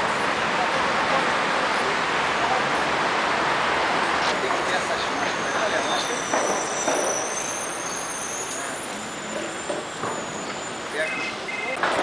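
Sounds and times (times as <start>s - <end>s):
city street traffic: 0.0s - 12.0s
short electronic beeps: 5.4s - 11.8s.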